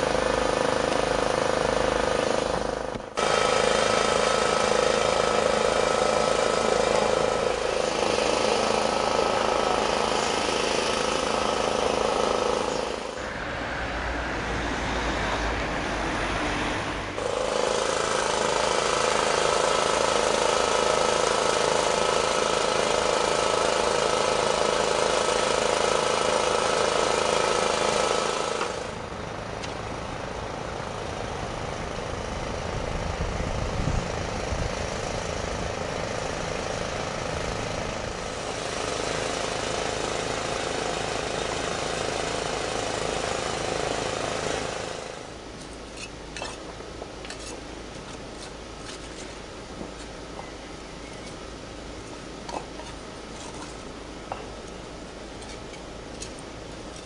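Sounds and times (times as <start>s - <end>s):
motor running: 0.0s - 13.4s, 16.4s - 29.3s, 31.0s - 45.4s.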